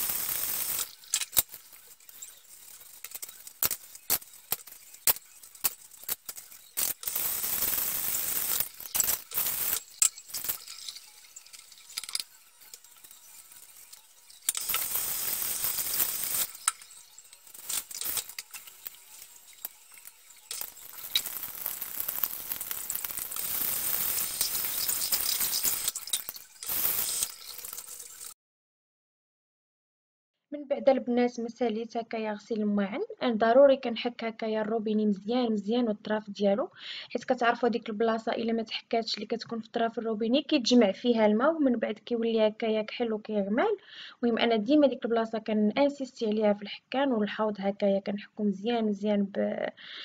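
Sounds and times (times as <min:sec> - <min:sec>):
tap water running: 0:00.0 - 0:28.4.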